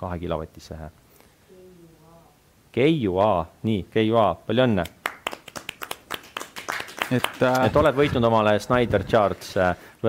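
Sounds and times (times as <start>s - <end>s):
hands clapping: 4.8s - 9.6s.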